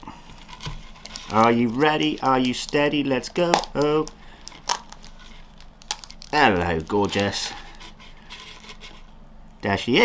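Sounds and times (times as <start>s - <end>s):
plastic crinkling: 0.0s - 9.1s.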